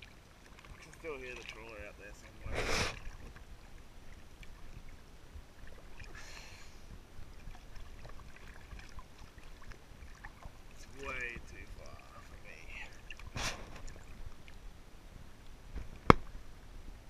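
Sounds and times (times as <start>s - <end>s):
small water splashes: 0.0s - 14.8s
small waves lapping: 0.0s - 16.6s.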